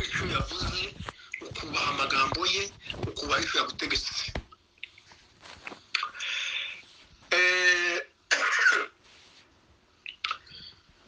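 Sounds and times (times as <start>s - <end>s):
person holding a vocal note: 7.3s - 8.2s
person coughing: 8.3s - 9.0s.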